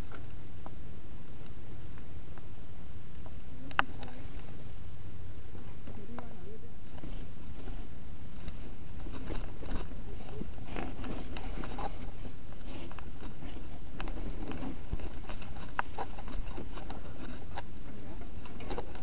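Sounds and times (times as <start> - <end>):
bike tyre rumble: 0.0 - 19.0
bike clicks and rattles: 8.4 - 19.0.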